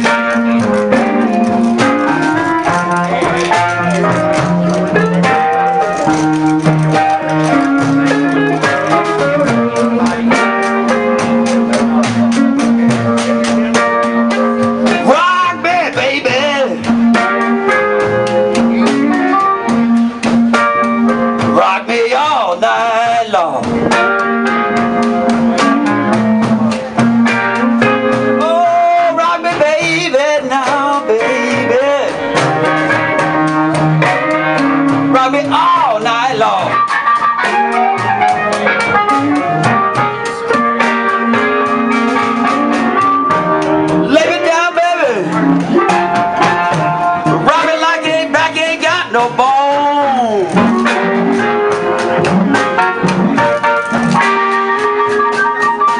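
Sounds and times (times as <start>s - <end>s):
blues band playing: 0.0s - 55.9s
lead guitar bending notes: 0.0s - 55.9s.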